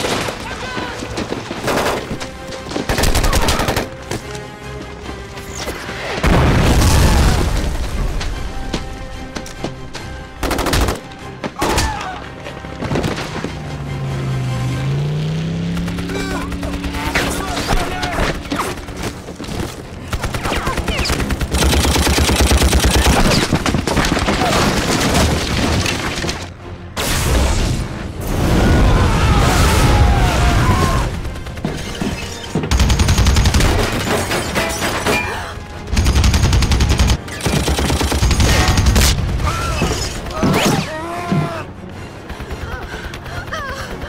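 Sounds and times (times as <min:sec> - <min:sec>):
rapid machine-gun fire: 0:10.4 - 0:11.0, 0:15.7 - 0:17.6, 0:20.1 - 0:25.3, 0:32.7 - 0:34.0, 0:35.9 - 0:39.4
automatic gunfire and rifle shots: 0:10.4 - 0:11.1, 0:15.7 - 0:25.5, 0:31.1 - 0:34.6, 0:35.9 - 0:39.4.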